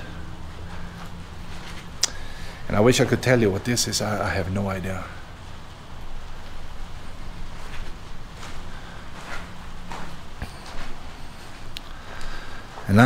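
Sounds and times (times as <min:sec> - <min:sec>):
low steady rumble: 0:00.0 - 0:13.0
footsteps on straw-strewn dirt: 0:07.3 - 0:11.3.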